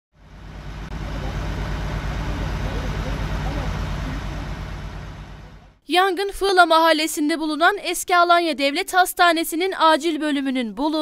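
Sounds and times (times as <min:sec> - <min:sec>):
diesel engine idling: 0:00.2 - 0:05.8.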